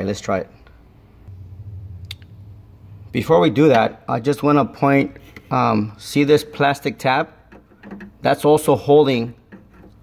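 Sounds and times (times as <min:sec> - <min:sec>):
faint low hum: 0:00.0 - 0:04.2.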